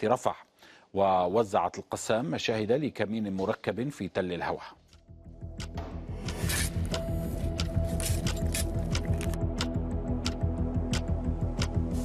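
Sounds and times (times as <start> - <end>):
background music with pulsing beat: 5.0 - 12.0.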